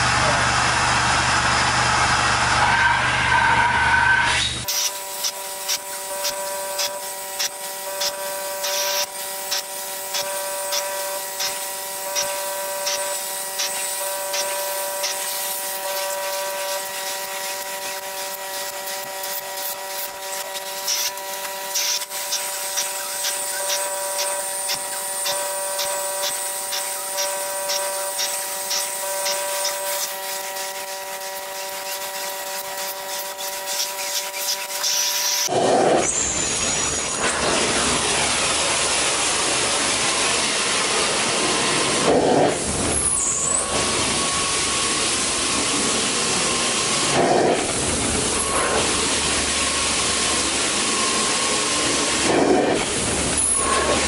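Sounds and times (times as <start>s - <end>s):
machine whine: 0.0s - 54.0s
vacuum wand sucking across carpet: 4.6s - 36.3s, 40.8s - 54.0s.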